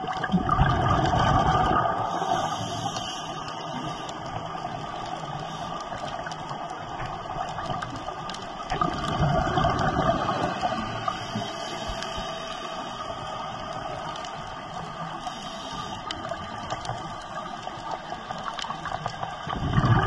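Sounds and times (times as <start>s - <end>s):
rush of bubbling: 0.0s - 12.1s, 16.0s - 20.0s
faint clicks underwater: 0.0s - 20.0s
underwater watery hiss: 0.0s - 20.0s.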